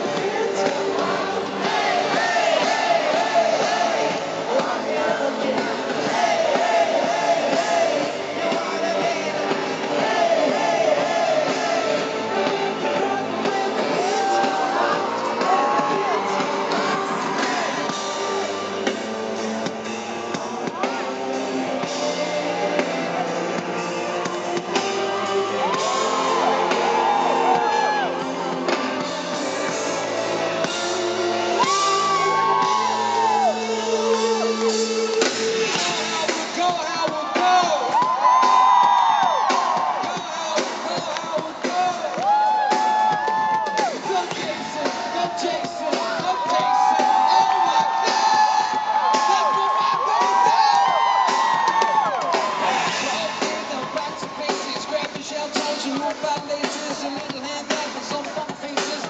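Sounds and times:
crowd whooping and screaming: 0.0 - 59.0
pop band music over pa: 0.0 - 59.0.

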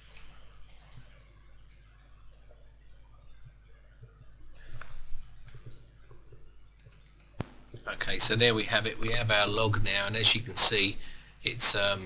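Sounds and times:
faint low hum: 0.0 - 12.0
man speaking: 7.8 - 12.0.

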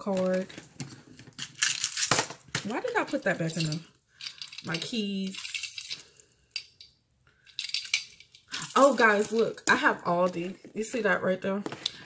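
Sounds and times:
keys jingling: 3.1 - 9.5.

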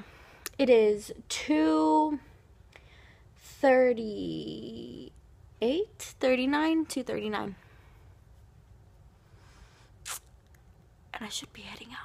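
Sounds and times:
short breath: 2.8 - 3.3.

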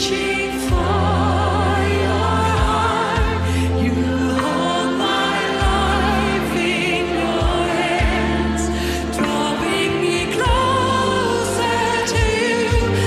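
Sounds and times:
sustained bass notes: 0.0 - 13.0
voices singing with vibrato: 0.0 - 13.0.

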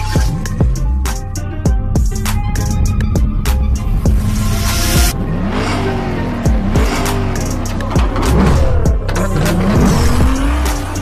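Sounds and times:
intro music with bass beat: 0.0 - 11.0
car engine revving: 2.2 - 11.0.

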